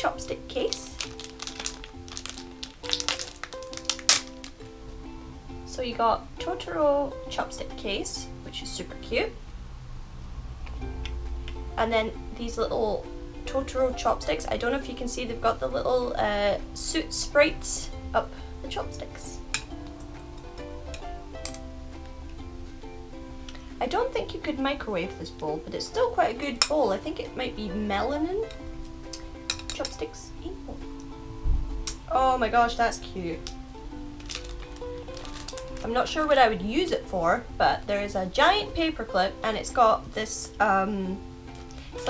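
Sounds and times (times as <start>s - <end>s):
plucked-string tune: 0.0s - 9.4s, 10.6s - 42.0s
background music simple melody: 0.0s - 42.0s
plastic wrapper crackling: 0.5s - 4.6s, 33.4s - 36.4s.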